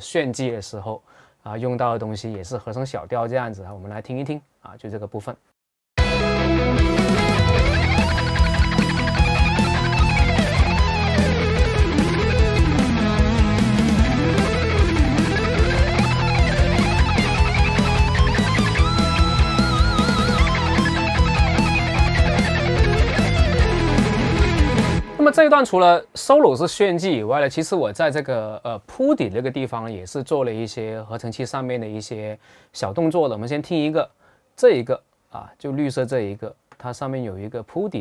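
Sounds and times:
drums: 6.0s - 25.4s
fast electric guitar solo: 6.0s - 25.4s.

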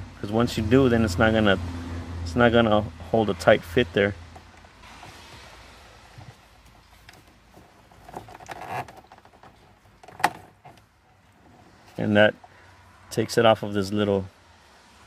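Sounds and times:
plastic rubbing and rattling: 6.1s - 12.0s.

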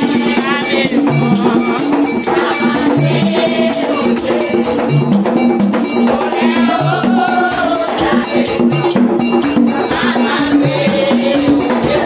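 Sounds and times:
bell-like metal strikes: 0.2s - 10.1s.

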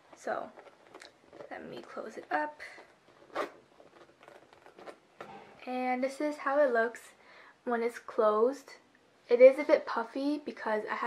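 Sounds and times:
zipper pulled shut: 2.6s - 5.4s.

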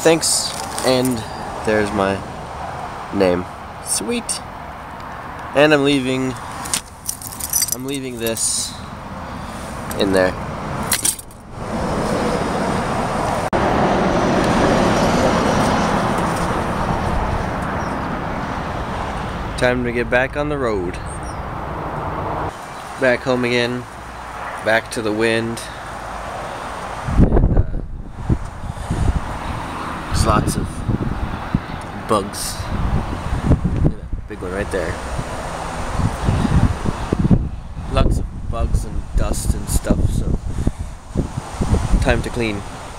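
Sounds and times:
freeway traffic: 0.0s - 42.9s
wind blowing across microphone: 5.0s - 23.0s, 26.2s - 42.9s.

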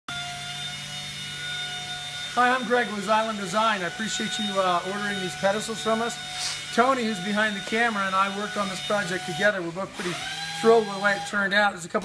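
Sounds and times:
machine hum: 0.1s - 11.3s.

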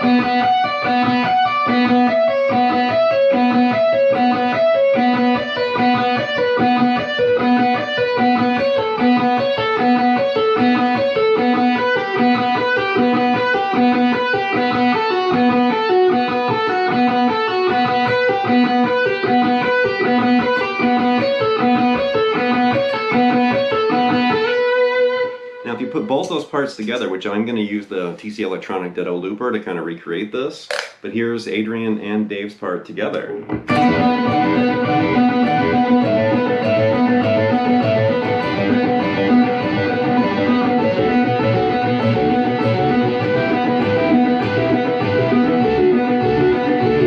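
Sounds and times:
electric guitar fast picked melody: 0.0s - 27.2s, 33.4s - 47.0s.

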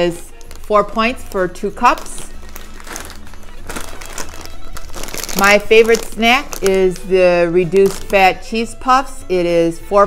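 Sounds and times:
plastic snack bag crinkling: 0.0s - 8.5s.

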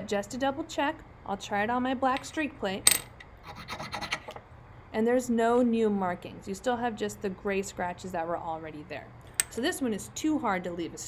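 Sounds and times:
mineral scraping on porcelain plate: 3.4s - 4.4s.

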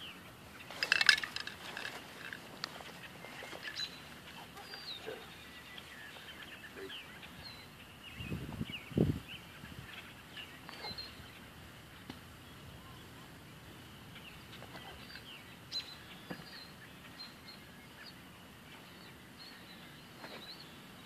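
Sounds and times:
bird chirps: 2.7s - 13.3s, 13.9s - 21.0s.

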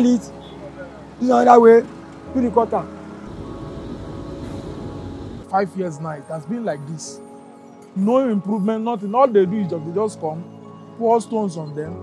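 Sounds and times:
road traffic rumble: 0.0s - 5.5s.

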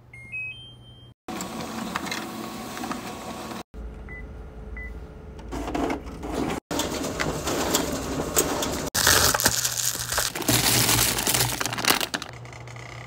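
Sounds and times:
plastic mailer crinkling: 9.0s - 12.4s.

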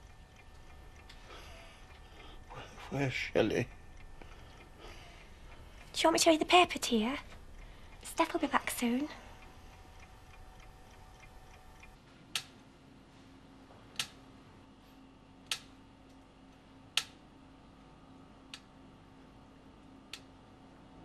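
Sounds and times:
clock ticking: 0.0s - 12.5s
low steady hum: 0.0s - 21.0s.

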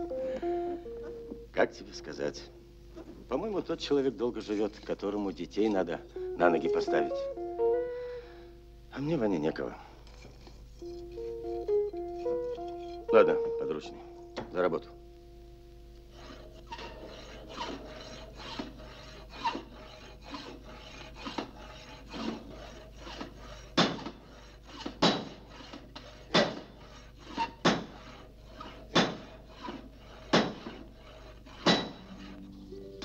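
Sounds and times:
hammer blows on anvil: 29.0s - 29.3s, 31.6s - 33.0s.

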